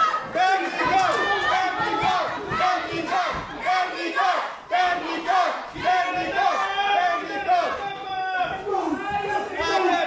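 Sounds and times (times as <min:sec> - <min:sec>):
crowd chanting in unison: 0:00.0 - 0:10.0.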